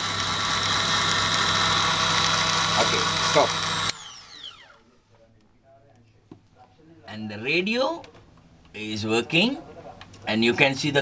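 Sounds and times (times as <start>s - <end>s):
electric grinder motor whining: 0.0s - 4.8s.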